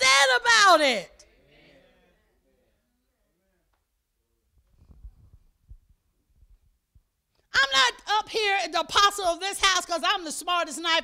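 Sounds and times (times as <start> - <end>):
faint low thumps and rumble: 4.6 - 7.1.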